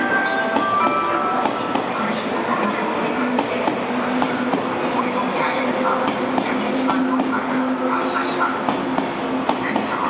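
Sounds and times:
electric train running noise: 0.0s - 10.0s.

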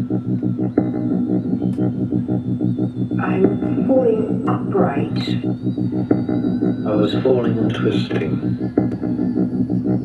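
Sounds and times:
low synthesizer pulse: 0.0s - 10.0s.

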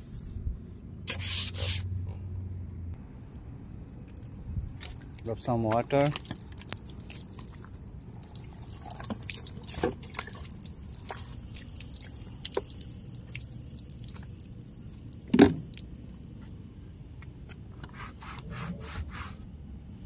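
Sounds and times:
water splashing and dripping: 4.8s - 16.4s.

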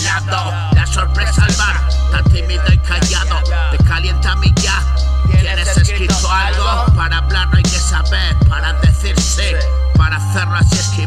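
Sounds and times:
deep bass: 0.0s - 11.0s
rapping over a beat: 0.0s - 11.0s.

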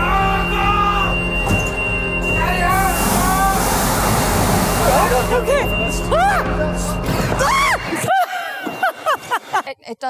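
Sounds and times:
steady hum: 0.3s - 7.9s
slide inflating with rushing hiss: 2.7s - 5.3s.

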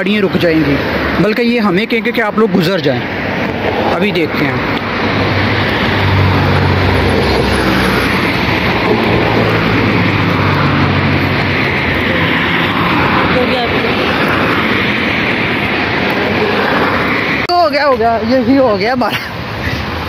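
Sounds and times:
car engine humming: 0.0s - 20.0s
traffic rushing: 0.0s - 20.0s.

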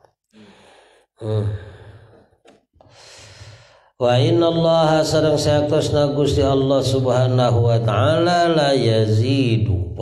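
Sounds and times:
soft breath in: 0.3s - 2.2s, 2.8s - 4.0s.

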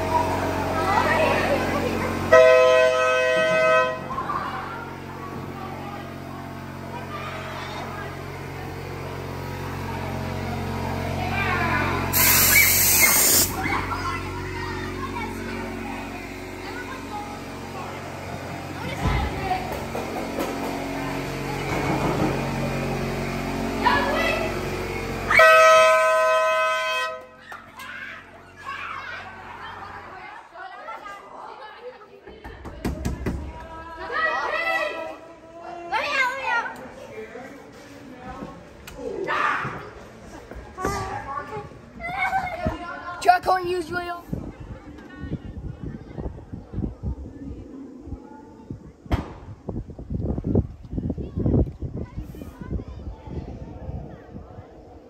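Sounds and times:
children's voices: 0.0s - 2.4s, 3.0s - 25.4s, 27.2s - 49.1s, 50.1s - 55.0s
loud horn-like blare: 2.2s - 4.2s, 25.2s - 27.4s
loud hiss: 12.1s - 13.6s.

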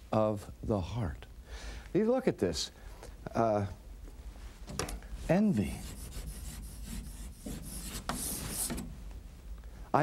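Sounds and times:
chalk scratching on a chalkboard: 5.5s - 8.9s.

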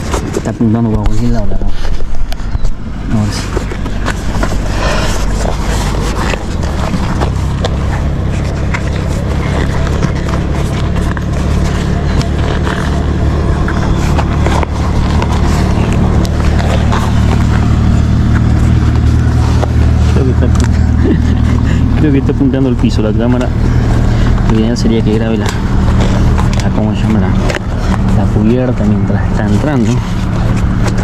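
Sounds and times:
clicks and rubs of bicycle tyre: 0.0s - 31.0s
road traffic rumble: 0.0s - 31.0s
person speaking: 18.4s - 30.6s.

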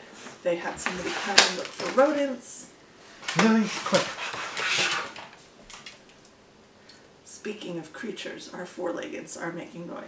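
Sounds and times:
pets rustling and scuffling: 0.2s - 2.3s, 3.2s - 6.0s.

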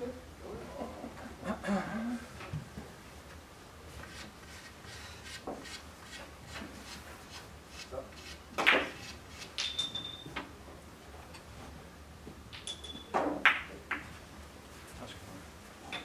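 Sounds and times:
billiard cue striking ball: 8.6s - 9.0s
billiard balls clicking: 8.6s - 10.2s, 12.5s - 14.2s.

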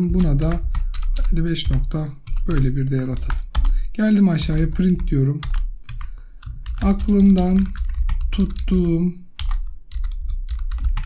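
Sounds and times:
computer keyboard typing: 0.0s - 11.0s.

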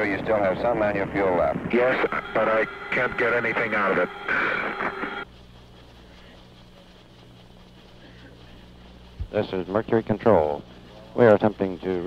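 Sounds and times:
crackly radio transmission: 0.0s - 12.0s
faint low hum with hiss: 0.0s - 12.0s.

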